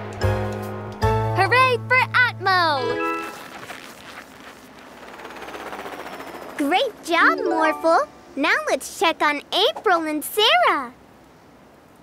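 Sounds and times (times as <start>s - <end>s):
cartoon helicopter rotor chopping: 4.8s - 8.0s
cartoon voice: 6.6s - 10.9s.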